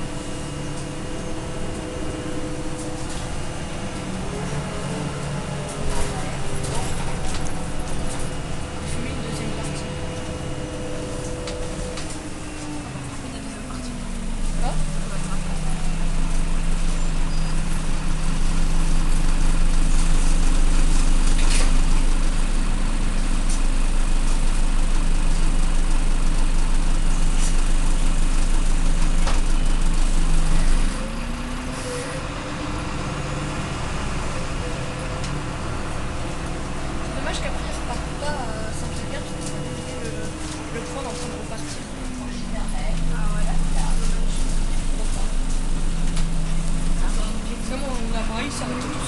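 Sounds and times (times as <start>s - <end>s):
bus engine pulling: 0.0s - 49.0s.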